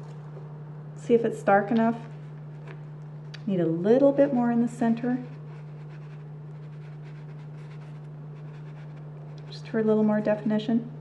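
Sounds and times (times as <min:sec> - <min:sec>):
low electrical hum: 0:00.0 - 0:11.0
stencil brush scratching: 0:04.8 - 0:09.6.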